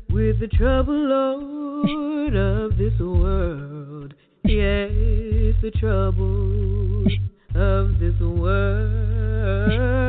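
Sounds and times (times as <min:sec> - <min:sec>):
deep bass voice holding low notes: 0:00.0 - 0:01.0, 0:02.3 - 0:03.6, 0:04.5 - 0:10.0
a cappella gospel singing: 0:00.0 - 0:10.0.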